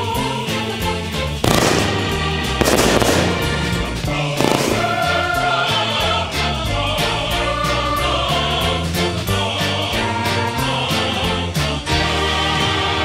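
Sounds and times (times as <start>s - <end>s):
background music with bass line: 0.0s - 13.0s
firework bangs on pavement: 1.4s - 5.2s.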